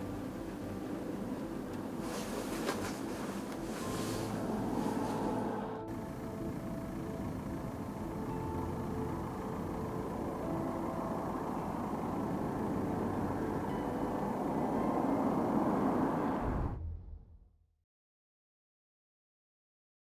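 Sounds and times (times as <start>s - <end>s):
tyre and road noise: 0.0s - 16.9s.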